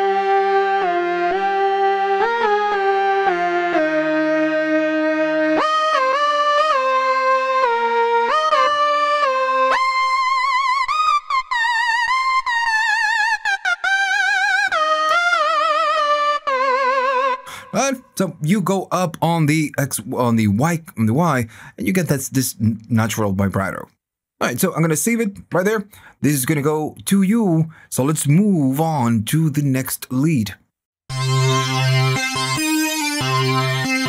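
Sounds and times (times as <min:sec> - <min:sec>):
synthesizer lead melody: 0:00.0 - 0:18.5, 0:31.1 - 0:34.0.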